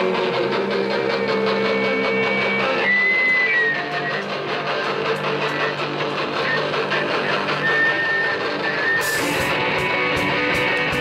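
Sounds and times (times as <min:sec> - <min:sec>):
rock band playing instrumental: 0:00.0 - 0:11.0.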